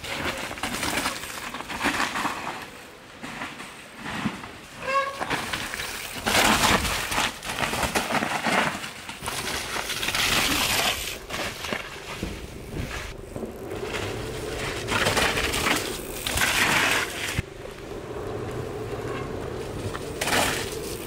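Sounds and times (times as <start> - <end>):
bike tyres skidding through mud: 0.0 - 21.0.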